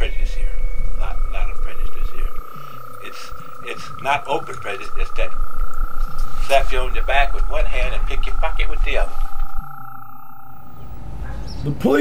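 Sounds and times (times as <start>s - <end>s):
high-pitched tones: 0.0s - 11.3s
low hum: 0.0s - 11.4s.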